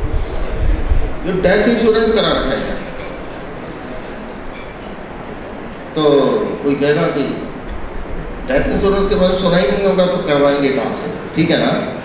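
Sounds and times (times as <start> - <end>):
hall background hiss and rumble: 0.0 - 12.0.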